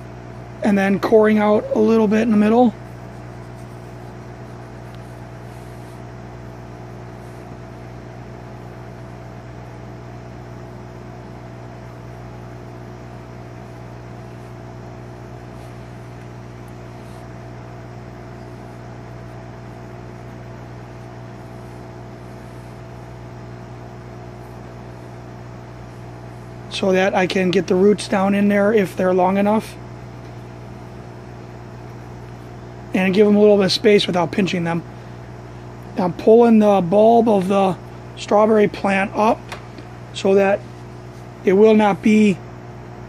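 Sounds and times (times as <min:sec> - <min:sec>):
electrical machine hum: 0:00.0 - 0:43.0.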